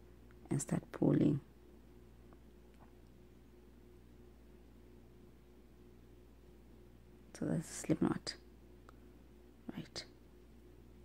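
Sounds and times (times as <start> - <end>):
low electrical hum: 0.0 - 11.0
soft whispered syllable: 9.6 - 10.2.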